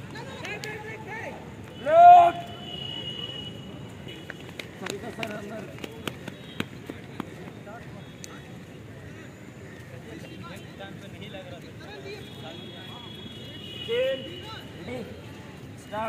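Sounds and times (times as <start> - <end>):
murmur of people: 0.0 - 16.0
man shouting: 1.8 - 2.4.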